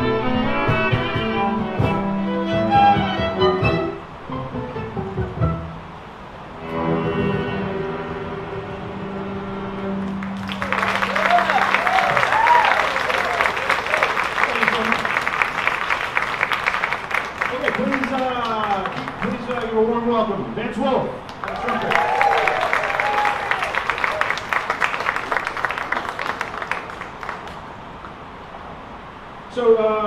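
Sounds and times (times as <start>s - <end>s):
string quartet playing: 0.0s - 11.8s
audience applause: 10.0s - 19.9s, 21.2s - 27.9s.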